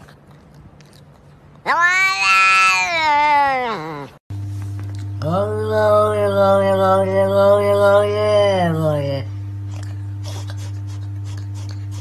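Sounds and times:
cat meowing: 1.6s - 4.2s
steady low hum: 3.9s - 12.0s.

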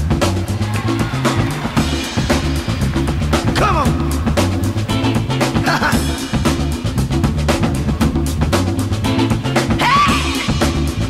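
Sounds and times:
drum kit snare and bass drum: 0.0s - 11.0s
funk band groove: 0.0s - 11.0s
repeating bass line: 0.0s - 11.0s.

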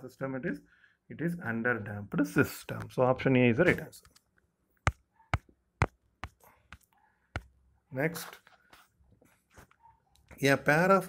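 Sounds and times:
faint breathing: 0.6s - 1.1s.

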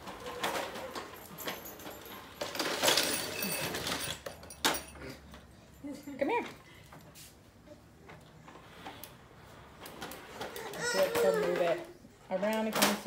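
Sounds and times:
toy walker rattling on tile floor: 0.0s - 5.3s, 8.8s - 13.0s.

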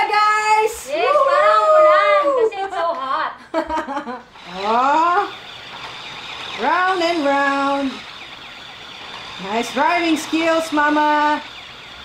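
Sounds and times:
siren-like wails: 4.3s - 12.0s.

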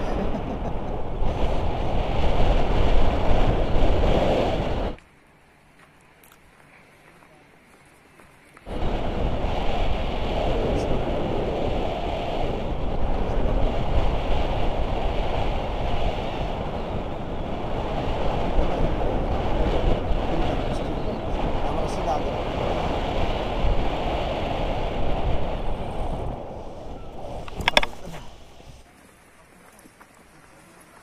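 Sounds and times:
wind rushing over microphone: 0.0s - 5.0s, 8.6s - 28.9s.

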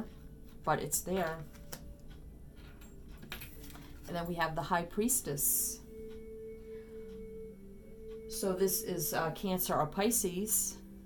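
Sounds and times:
soft music of held tones: 0.0s - 11.0s.

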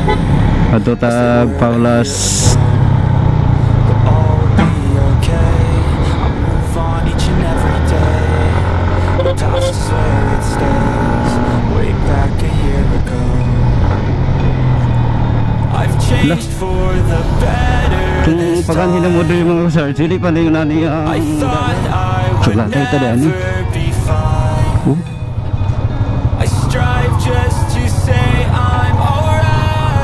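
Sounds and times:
background music: 0.0s - 30.0s
motorcycle engine running: 0.0s - 30.0s.

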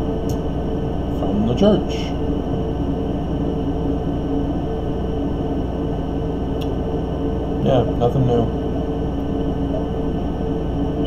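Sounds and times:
steady drone: 0.0s - 11.0s.

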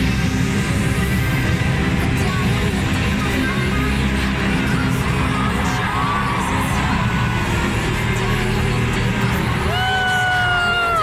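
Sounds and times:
loud music with heavy bass: 0.0s - 11.0s
crowd cheering: 4.6s - 11.0s
long whoop: 9.6s - 11.0s.

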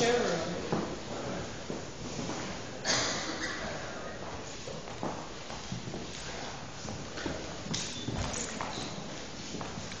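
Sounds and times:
footsteps on hardwood floor: 0.6s - 2.8s, 4.2s - 10.0s.

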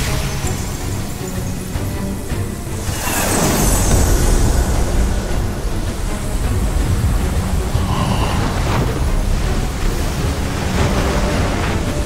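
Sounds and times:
swirling portal low rumble: 2.8s - 10.6s.

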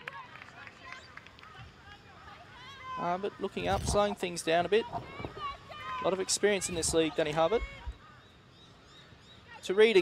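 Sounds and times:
distant players' voices and calls: 0.0s - 10.0s.

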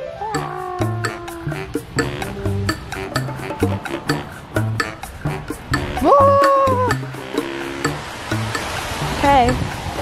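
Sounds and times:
person singing high notes: 0.1s - 8.0s
pop music beat and bass: 0.4s - 10.0s.

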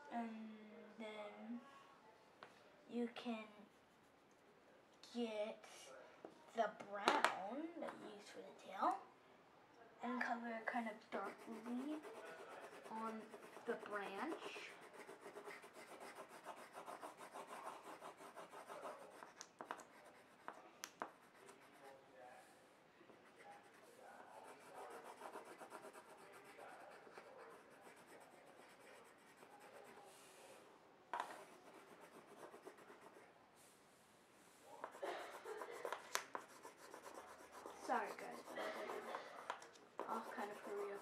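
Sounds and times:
pencil scratching on paper: 11.0s - 22.0s, 23.2s - 30.6s, 31.2s - 33.3s, 34.8s - 41.0s.

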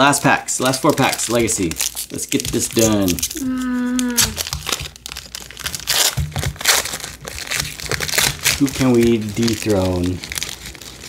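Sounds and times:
foil wrapper crinkling and tearing: 0.0s - 11.0s.

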